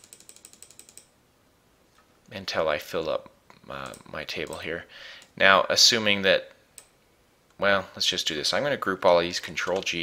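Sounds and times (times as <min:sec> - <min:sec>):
rapid mouse clicks: 0:00.0 - 0:01.1, 0:06.8 - 0:07.0, 0:09.4 - 0:10.0.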